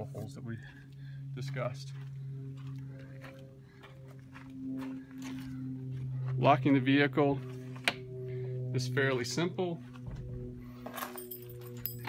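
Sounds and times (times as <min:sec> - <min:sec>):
low hum: 0:00.0 - 0:12.0
footsteps walking: 0:00.2 - 0:06.7.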